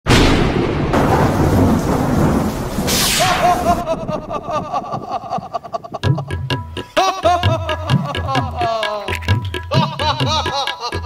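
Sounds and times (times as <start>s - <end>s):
rain: 0.1s - 3.9s
thunder crack: 0.1s - 5.6s
thunder rumble: 0.1s - 5.9s
music: 6.0s - 11.0s.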